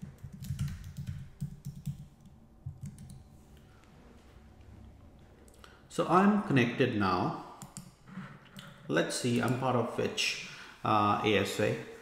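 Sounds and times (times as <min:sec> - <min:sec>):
typing on computer keyboard: 0:00.0 - 0:03.2.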